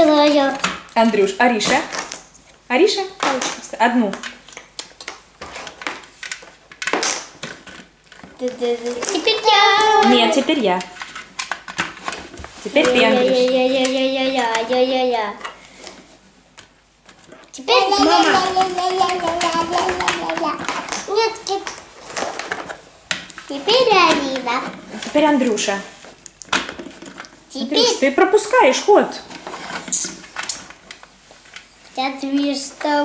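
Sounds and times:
child's high-pitched voice: 0.0s - 0.6s, 8.4s - 10.5s, 12.8s - 15.4s, 17.6s - 21.7s, 32.0s - 33.0s.

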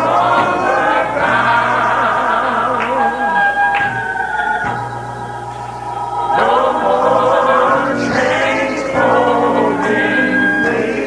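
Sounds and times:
gospel choir singing: 0.0s - 11.0s.

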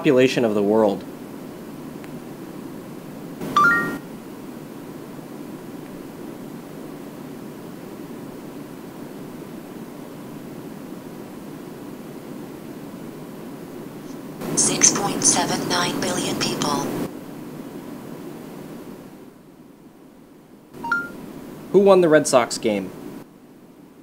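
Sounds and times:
faint hiss: 0.0s - 24.0s
rising electronic chime: 3.4s - 4.0s.

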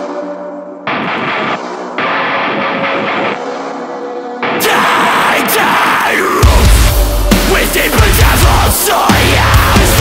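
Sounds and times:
heavy metal distorted guitar: 0.8s - 10.0s.

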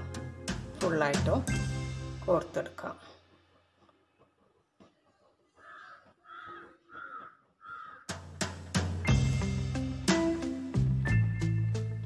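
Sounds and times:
bird calling: 5.6s - 8.1s.

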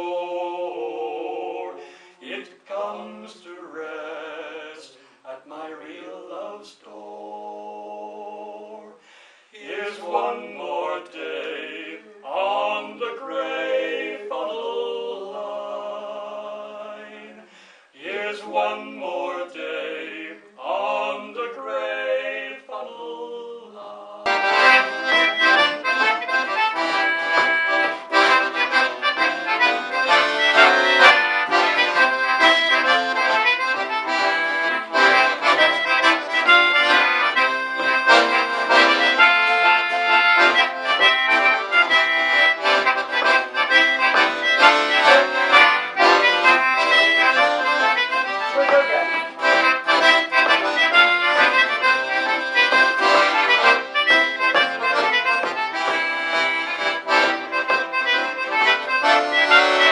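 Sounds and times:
accordion playing folk tune: 0.0s - 1.9s, 24.2s - 59.9s.

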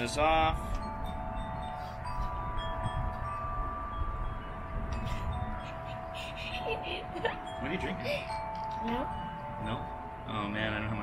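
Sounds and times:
chimes ringing: 0.0s - 11.0s.

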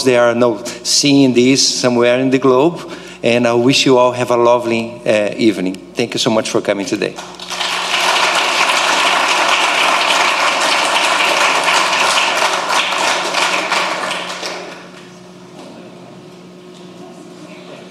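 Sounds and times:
audience applauding: 7.2s - 15.1s.

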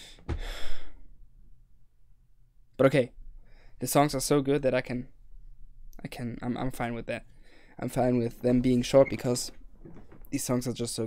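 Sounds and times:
man sighing: 0.0s - 1.0s.

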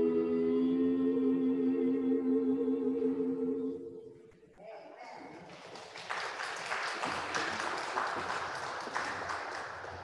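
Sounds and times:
congregation applauding: 5.4s - 10.0s.

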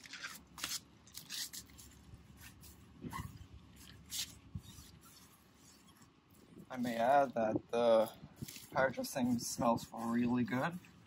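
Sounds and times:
brush scrubbing tire: 8.0s - 10.9s.

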